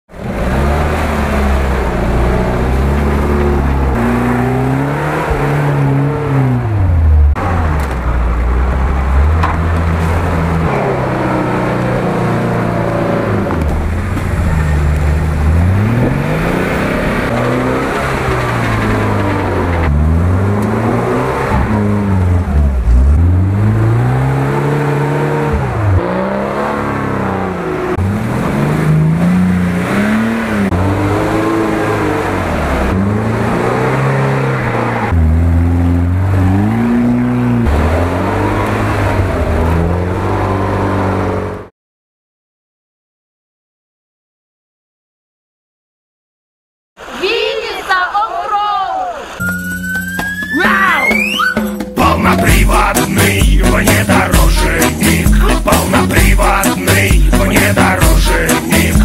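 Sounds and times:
off-road vehicle engine revving: 0.1s - 41.7s, 51.2s - 59.0s.

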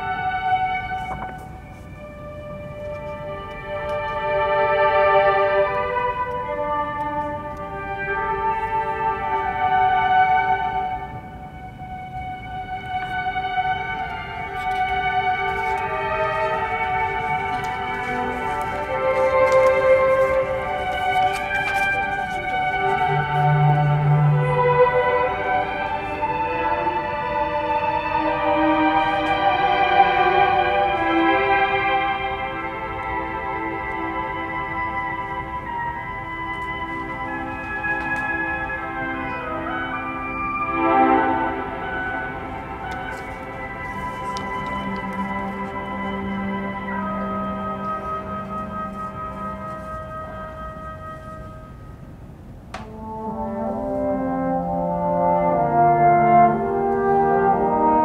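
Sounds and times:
orchestra sustained string chords: 0.0s - 58.0s.

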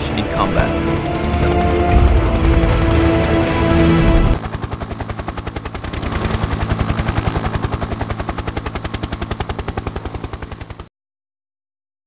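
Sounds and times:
helicopter rotor chop: 0.0s - 10.9s.

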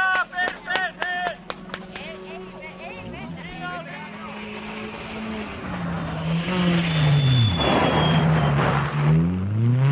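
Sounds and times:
people talking: 0.0s - 4.8s
car engine droning: 0.0s - 9.9s.

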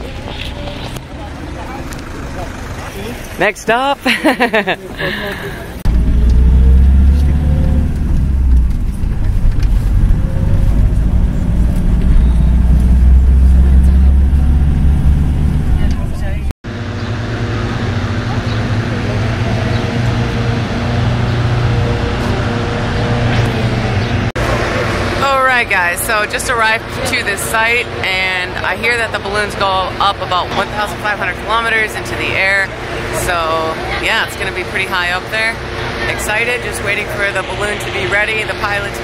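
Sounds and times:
minibus engine rumble: 0.0s - 39.0s
outdoor background noise: 0.0s - 39.0s
road noise: 0.0s - 39.0s.

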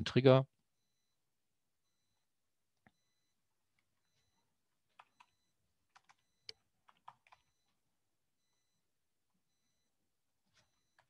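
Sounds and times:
faint keyboard typing: 3.7s - 7.8s, 10.5s - 11.0s.

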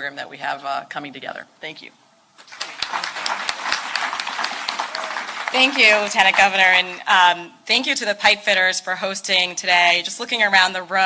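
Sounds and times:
audience applauding: 2.4s - 6.8s.

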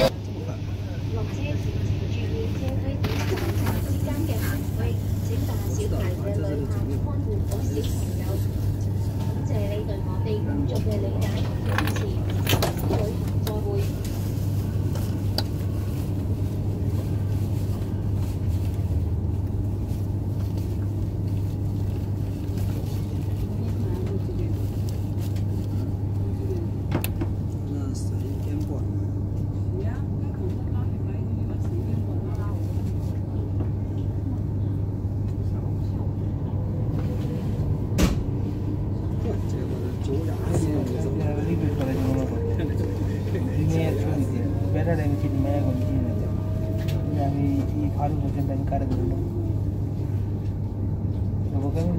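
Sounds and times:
passengers murmuring: 0.0s - 51.9s
train carriage hum: 0.0s - 51.9s.

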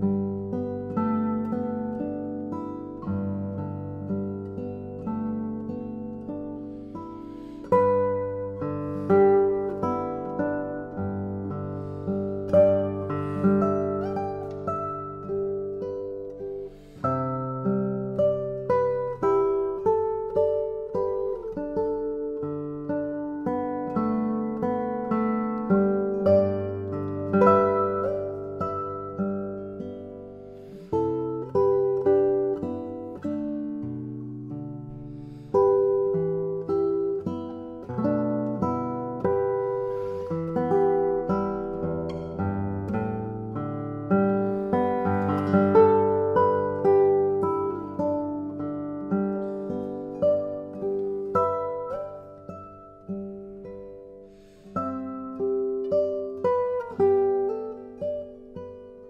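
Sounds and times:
fingerpicked classical guitar: 0.0s - 59.0s.

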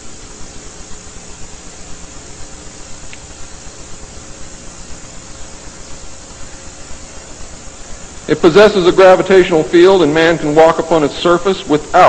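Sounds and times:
faint hum: 0.0s - 12.0s
recording hiss: 0.0s - 12.0s
small click: 3.1s - 3.3s.

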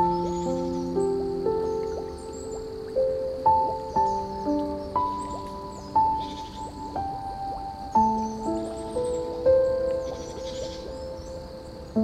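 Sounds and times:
faint high chirping: 0.0s - 12.0s
soft slow piano music: 0.0s - 12.0s.

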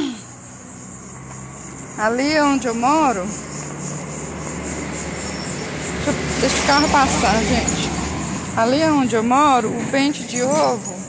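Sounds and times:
car engine running: 0.4s - 9.6s.

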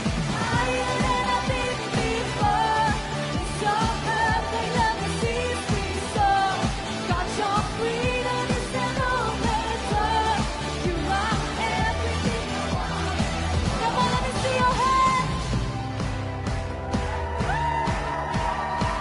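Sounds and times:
person singing lead vocal: 0.0s - 15.6s.

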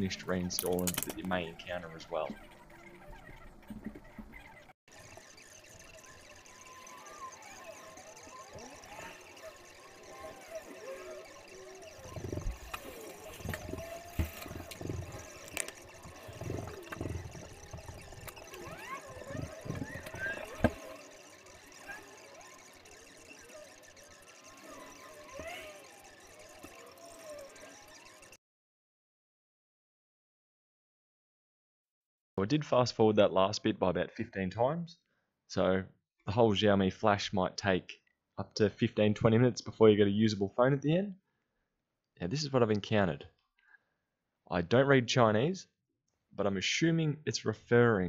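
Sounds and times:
rapidly gliding chirps and squeaks: 0.0s - 28.4s.

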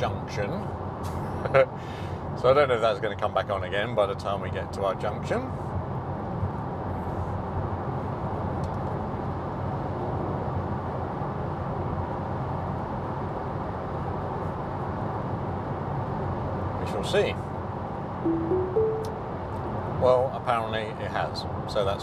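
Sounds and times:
tyre and wind rush in car: 5.0s - 18.2s.

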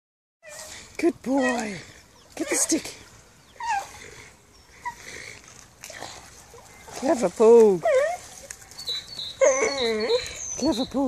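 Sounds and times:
faint bird chirps: 8.6s - 11.0s.

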